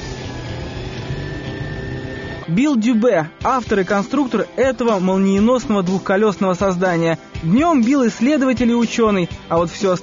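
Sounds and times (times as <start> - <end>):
motorcycle tyre spinning: 0.0 - 2.4
high-pitched electric whine: 0.0 - 3.0.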